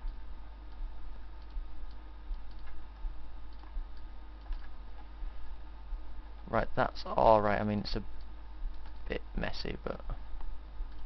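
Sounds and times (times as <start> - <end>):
low electrical hum and hiss: 0.0 - 11.0
computer mouse clicks: 1.4 - 5.1, 8.2 - 9.1.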